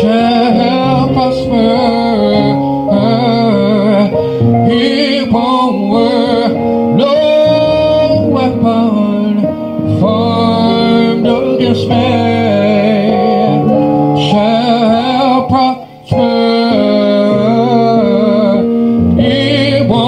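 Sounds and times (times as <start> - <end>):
instrumental backing music: 0.0 - 20.0
man singing gospel song: 0.0 - 20.0.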